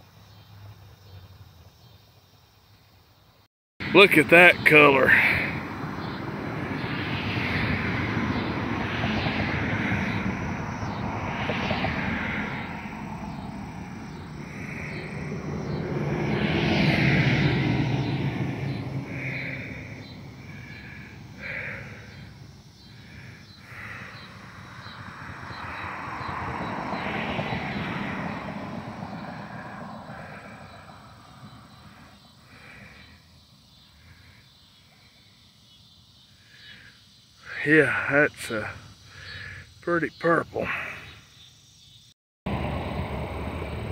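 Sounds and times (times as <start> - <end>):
distant engine rumble: 3.8 - 34.4, 36.4 - 41.0, 42.5 - 43.9.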